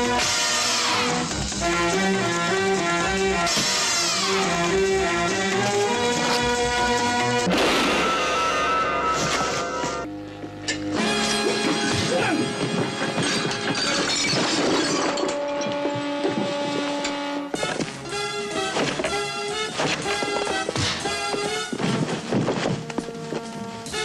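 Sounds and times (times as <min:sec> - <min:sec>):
background music: 0:00.0 - 0:24.0
crashes and shattering: 0:12.7 - 0:16.8.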